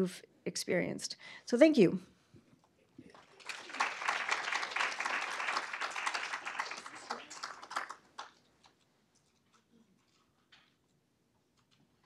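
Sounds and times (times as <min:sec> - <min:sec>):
audience applauding: 0:03.0 - 0:08.5.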